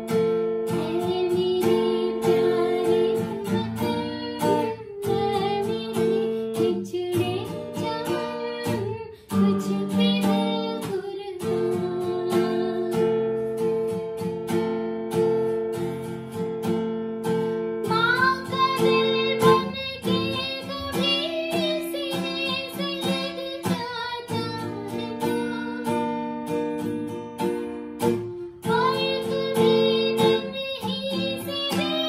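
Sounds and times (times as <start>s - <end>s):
woman singing: 0.0s - 14.2s, 17.7s - 26.8s, 28.0s - 32.0s
acoustic guitar strummed: 0.0s - 32.0s.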